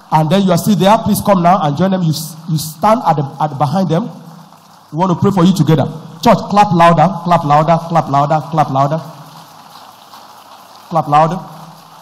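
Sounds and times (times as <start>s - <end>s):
crowd clapping: 8.5s - 12.0s.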